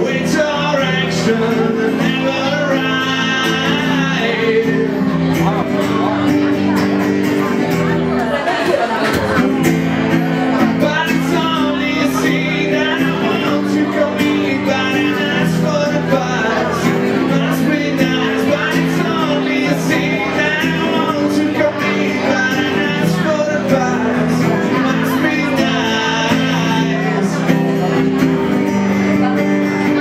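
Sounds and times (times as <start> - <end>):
man singing: 0.0 - 8.0, 9.2 - 30.0
acoustic guitar: 0.0 - 30.0.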